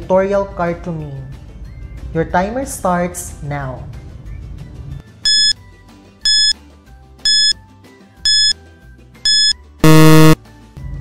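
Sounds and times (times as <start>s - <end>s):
loud buzzer: 5.3s - 5.5s, 6.3s - 6.5s, 7.3s - 7.5s, 8.3s - 8.5s, 9.3s - 10.4s
short high beeps: 5.3s - 5.5s, 6.3s - 6.5s, 7.3s - 7.5s, 8.3s - 8.5s, 9.3s - 10.4s.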